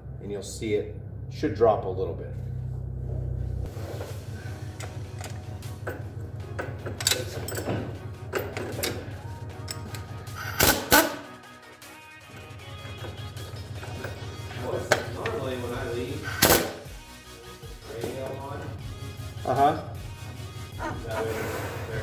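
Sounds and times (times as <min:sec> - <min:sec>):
radio playing music: 0:03.7 - 0:22.0
tools clinking on metal: 0:04.8 - 0:10.2.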